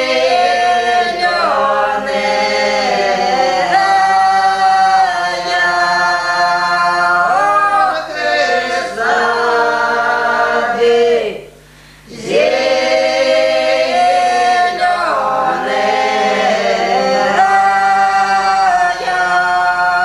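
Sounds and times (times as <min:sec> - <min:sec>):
women singing unaccompanied: 0:00.0 - 0:20.0.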